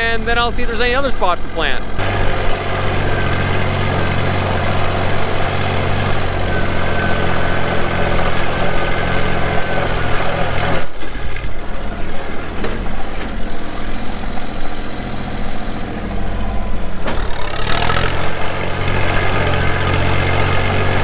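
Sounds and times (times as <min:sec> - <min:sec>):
tractor engine running: 0:00.0 - 0:21.0.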